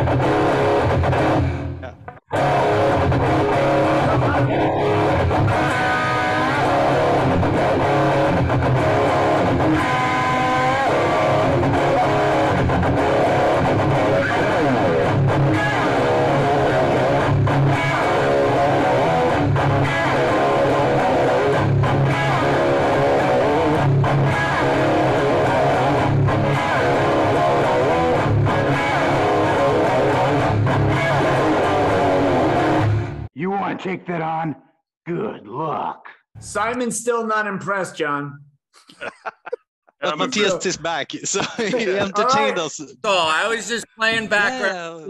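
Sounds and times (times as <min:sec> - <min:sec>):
electric guitar playing: 0:00.0 - 0:33.3.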